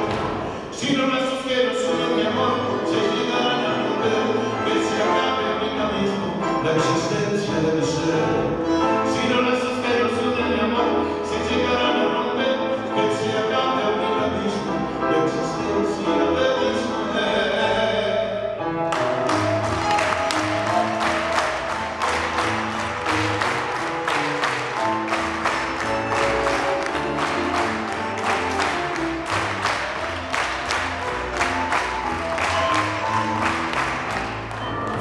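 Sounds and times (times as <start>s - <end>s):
tango played by piano and bass: 0.0s - 35.0s
sharp hand claps: 18.9s - 35.0s.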